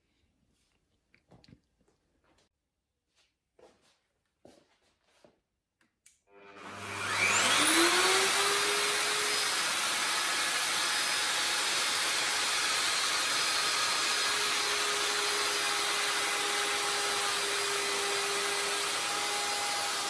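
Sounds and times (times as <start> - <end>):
electric router whining: 6.3 - 20.0.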